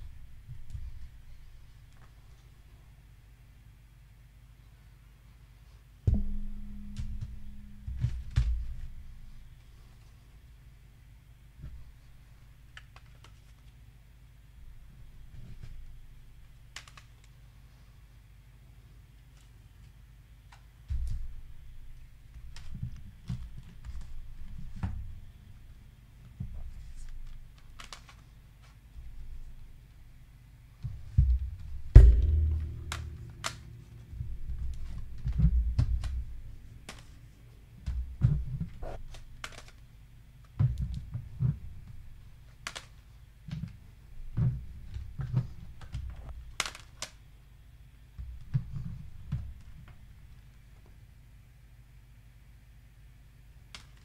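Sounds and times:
dull bumps: 0:06.1 - 0:09.2, 0:30.9 - 0:36.9
low ringing hum: 0:06.1 - 0:09.9, 0:31.0 - 0:39.4
sharp plastic clicks: 0:16.7 - 0:17.3, 0:46.5 - 0:47.2
plastic cd cases handled: 0:27.1 - 0:28.8, 0:39.0 - 0:39.9.

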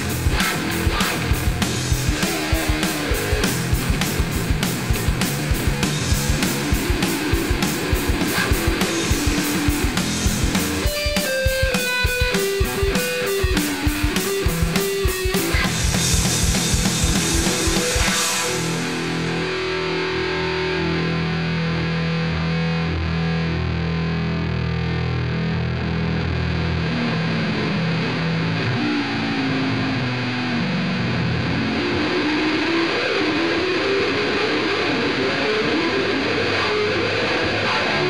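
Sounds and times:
distorted electric guitar music: 0:00.0 - 0:38.0.

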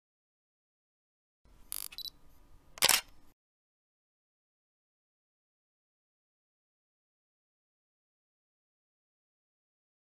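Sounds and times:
camera mechanical burst: 0:01.7 - 0:02.1
camera shutter release: 0:01.7 - 0:02.1, 0:02.8 - 0:03.1
camera high beep: 0:01.7 - 0:02.2.

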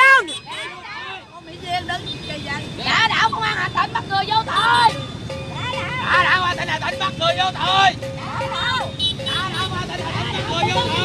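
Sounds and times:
people talking and shouting: 0:00.0 - 0:11.0.

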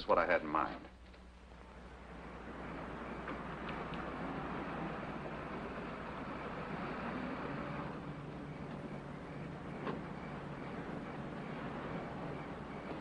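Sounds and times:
car engine running: 0:01.6 - 0:13.0
road and tyre noise: 0:01.6 - 0:13.0.

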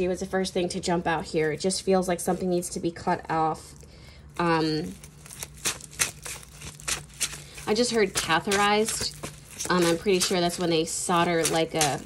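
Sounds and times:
playing cards being shuffled: 0:04.4 - 0:12.0.

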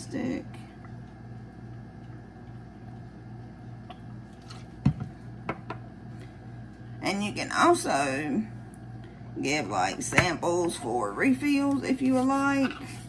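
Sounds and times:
steady low hum: 0:00.0 - 0:13.0
bottles set down on countertop: 0:04.8 - 0:05.8.

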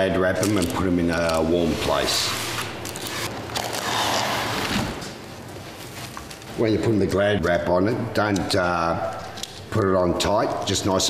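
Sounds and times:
plastic wrap rustling: 0:00.3 - 0:07.0.

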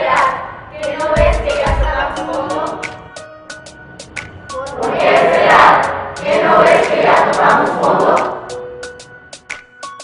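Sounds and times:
soundtrack music with choir: 0:00.0 - 0:10.0.

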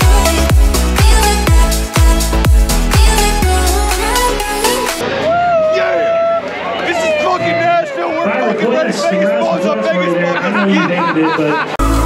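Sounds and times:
bar crowd babble: 0:05.0 - 0:12.0
man shouting and singing: 0:05.3 - 0:10.4.

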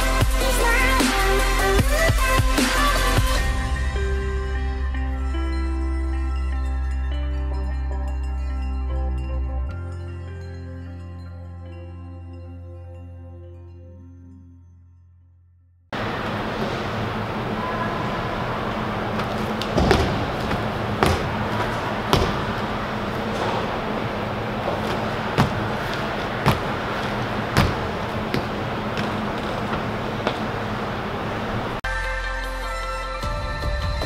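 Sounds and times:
music: 0:00.0 - 0:15.8, 0:31.8 - 0:34.0
feet landing on gym floor: 0:19.2 - 0:23.9, 0:24.6 - 0:30.5.

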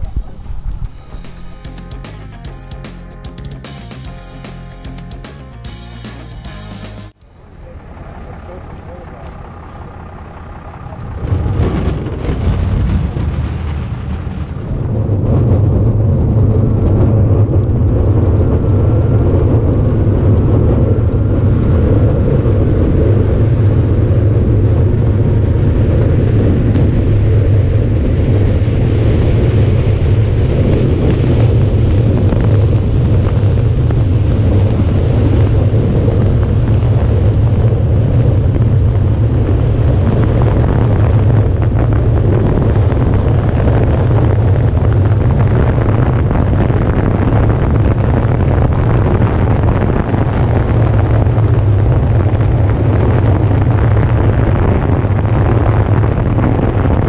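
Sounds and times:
wind rushing over camera: 0:00.0 - 0:01.8, 0:07.2 - 0:57.0
faint rising whine: 0:00.0 - 0:13.7.

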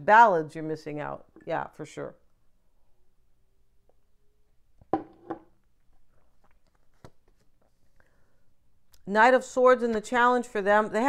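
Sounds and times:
cards clicking and rustling: 0:06.3 - 0:07.8.

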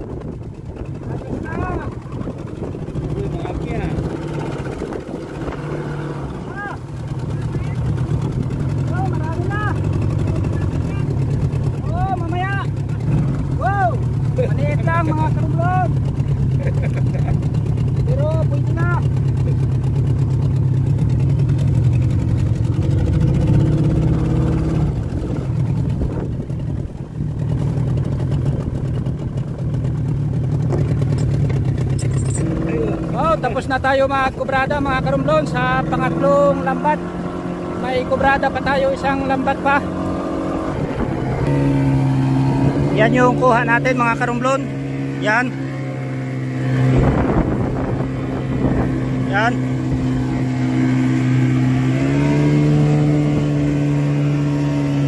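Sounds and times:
boat engine running at low revs: 0:00.0 - 0:55.0.

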